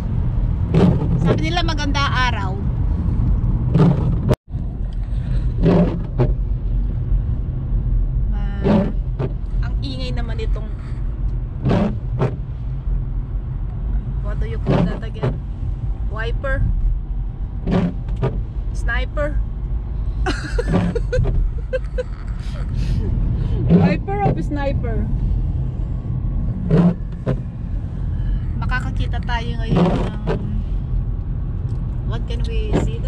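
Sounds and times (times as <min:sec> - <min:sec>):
car engine and tyres on wet road: 0:00.0 - 0:33.0.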